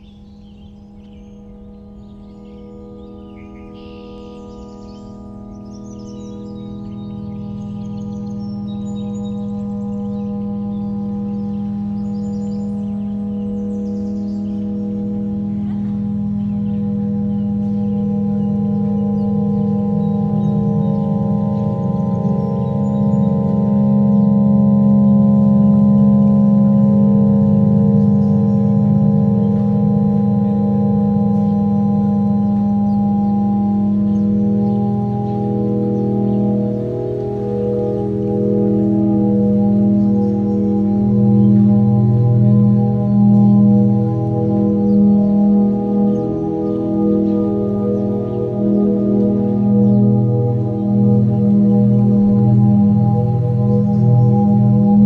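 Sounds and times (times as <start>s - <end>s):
ambient drone music: 0.0s - 55.0s.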